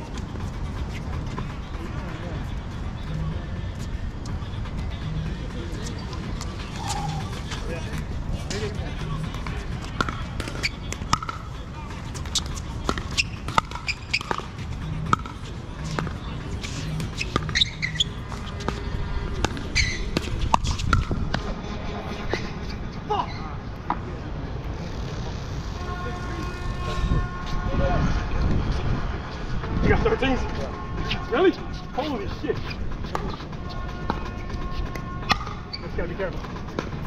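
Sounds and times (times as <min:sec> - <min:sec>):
ball bouncing on hard court: 0:09.4 - 0:11.5, 0:12.1 - 0:18.8, 0:19.4 - 0:21.4.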